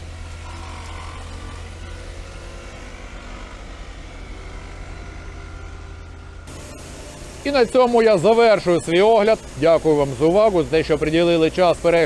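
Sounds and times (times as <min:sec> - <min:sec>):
arc welding crackling hiss: 0:00.0 - 0:12.0
diesel engine humming: 0:00.0 - 0:12.0.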